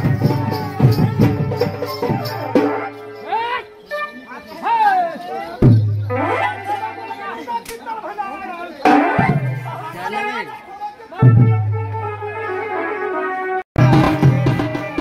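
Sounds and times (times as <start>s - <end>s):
heavy drum strokes: 0.0s - 3.0s, 13.8s - 15.0s
crowd voices and shouts: 0.0s - 15.0s
nasal wind instrument melody: 0.0s - 15.0s.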